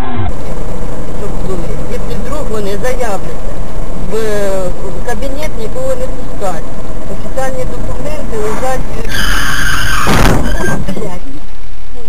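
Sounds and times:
road and engine rumble: 0.0 - 12.0
steady high-pitched tone: 0.0 - 12.0
person speaking: 1.1 - 9.2.

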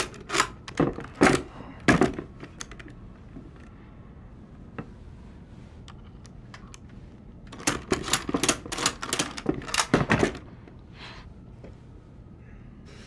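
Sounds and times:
rapid clicking and clattering: 7.5 - 10.4.

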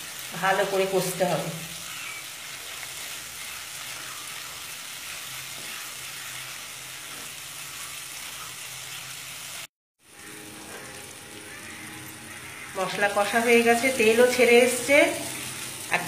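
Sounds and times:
masala sizzling in hot oil: 0.0 - 16.0.

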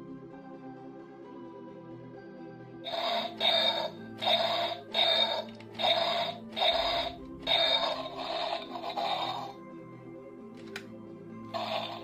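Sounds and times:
toy dinosaur electronic growls: 2.9 - 9.6, 11.5 - 12.0
toy music bed: 2.9 - 9.6, 11.5 - 12.0.

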